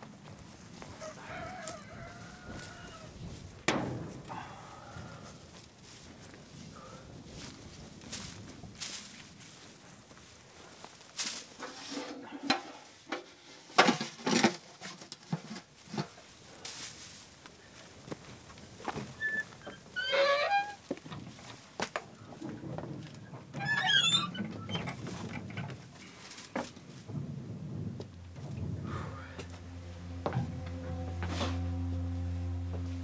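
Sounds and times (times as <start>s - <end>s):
rustles and knocks in dry grass: 0.0s - 20.0s, 20.7s - 23.3s, 24.9s - 28.8s
rooster crowing: 1.0s - 3.2s.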